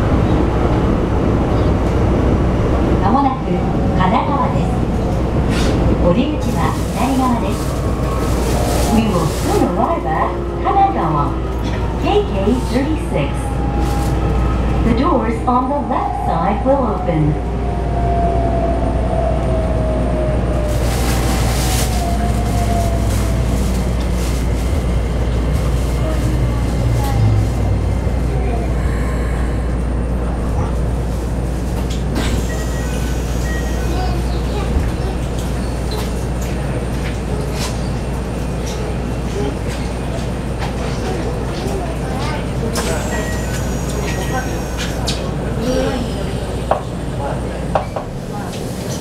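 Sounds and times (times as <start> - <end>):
low train rumble: 0.0 - 49.0.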